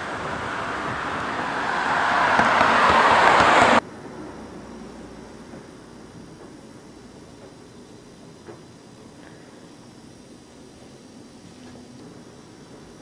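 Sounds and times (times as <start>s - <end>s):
car road noise approaching: 0.0s - 5.5s.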